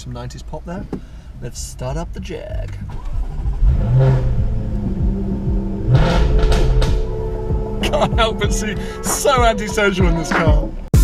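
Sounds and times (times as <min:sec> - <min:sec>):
car engine starting and revving: 0:00.4 - 0:10.9
music playing: 0:02.4 - 0:11.0.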